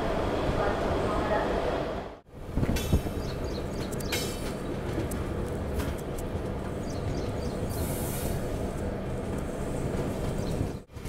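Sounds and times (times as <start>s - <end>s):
train wheels rumbling on track: 0.0s - 11.0s.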